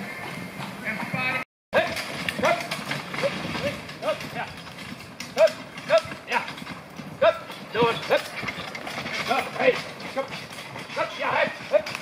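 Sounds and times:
hoofbeats on dirt: 0:00.0 - 0:12.0
carriage rattling: 0:01.8 - 0:12.0.

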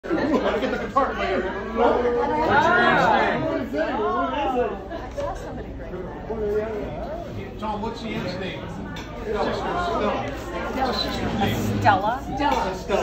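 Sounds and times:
people laughing: 0:00.0 - 0:03.6.

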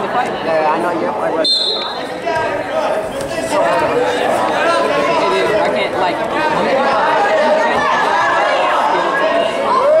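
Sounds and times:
many voices chattering: 0:00.0 - 0:10.0.

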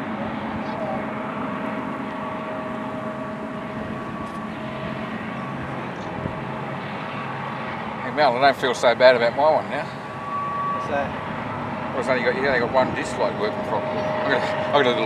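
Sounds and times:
locomotive engine drone: 0:00.0 - 0:15.0.

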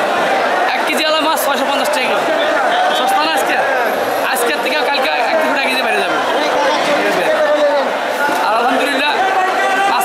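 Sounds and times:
crowd chatter: 0:00.0 - 0:10.0
man talking: 0:03.0 - 0:10.0.

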